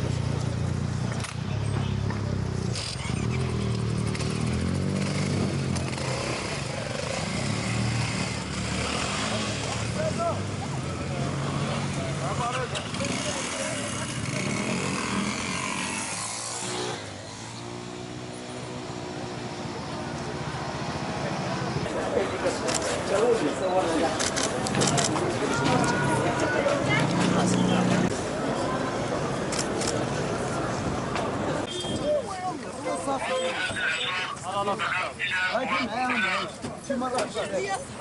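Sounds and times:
motorcycle engines running: 0.0 - 23.2, 24.2 - 28.6
crowd of men talking: 21.1 - 38.0.

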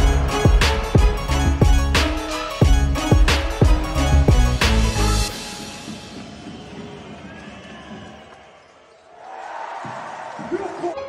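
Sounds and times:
arena crowd noise: 6.1 - 11.0.

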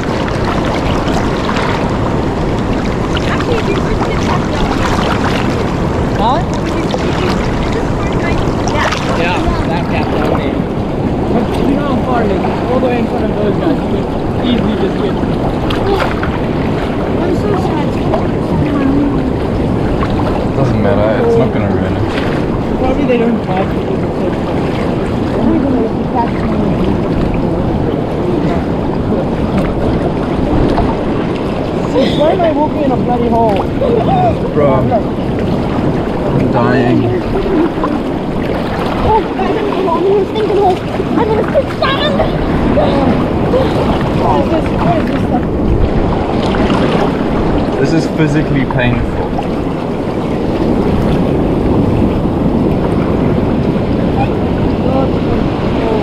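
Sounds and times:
sea water sloshing and rushing: 0.0 - 56.0
wind buffeting microphone: 0.0 - 56.0.

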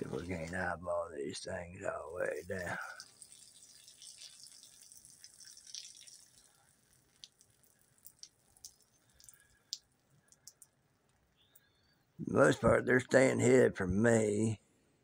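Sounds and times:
faint ticks: 6.3 - 11.7.

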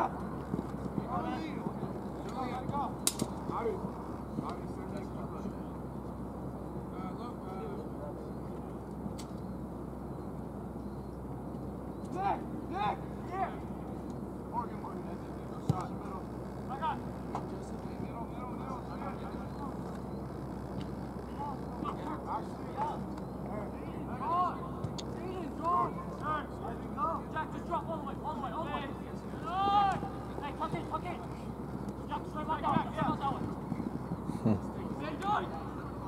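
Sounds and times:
low background noise: 0.0 - 36.0
players shouting: 12.1 - 13.7, 20.6 - 36.0.

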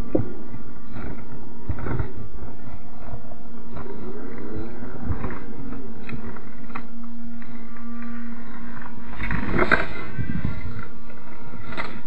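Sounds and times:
slowed electric motor growl: 0.0 - 12.0.

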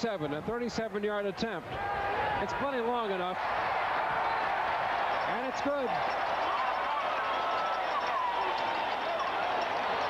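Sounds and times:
stadium crowd cheering: 1.7 - 10.0.

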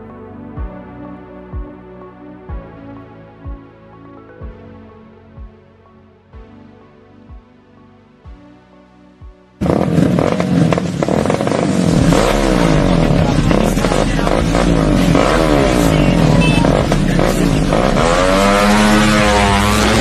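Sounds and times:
motorcycle engines revving: 9.6 - 20.0.

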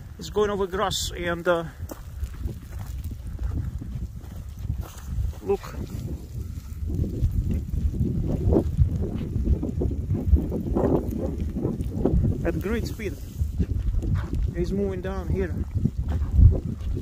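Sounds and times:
lava crust crackling and clinking: 0.0 - 17.0
wind rumble on microphone: 0.0 - 17.0.

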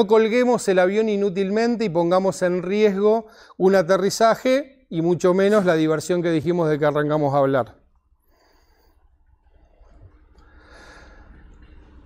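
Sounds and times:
breath close to microphone: 3.2 - 3.6, 8.2 - 12.0.

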